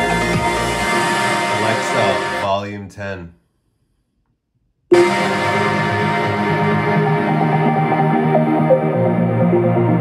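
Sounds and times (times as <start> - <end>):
electronic music through speaker: 0.0 - 2.5, 4.9 - 10.0.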